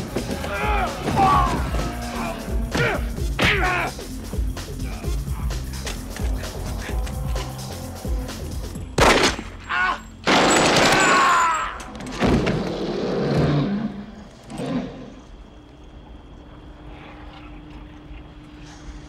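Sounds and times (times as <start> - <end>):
film score music: 0.0 - 12.4.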